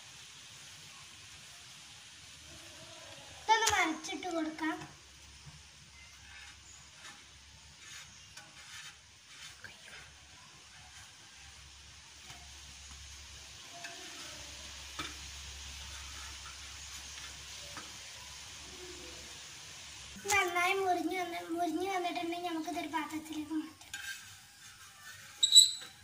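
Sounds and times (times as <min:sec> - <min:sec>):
bread sizzling on a griddle: 0:00.0 - 0:26.0
spatula tapping and scraping: 0:03.6 - 0:11.2, 0:12.2 - 0:13.1, 0:14.9 - 0:18.0, 0:23.8 - 0:26.0.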